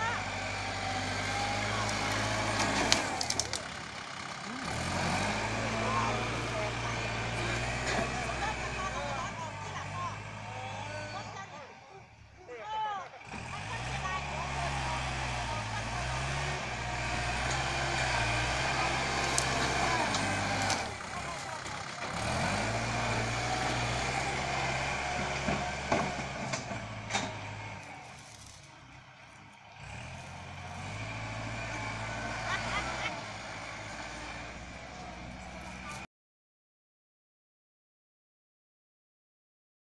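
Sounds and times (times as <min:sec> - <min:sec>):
tractor diesel engine revving: 0:00.0 - 0:36.1.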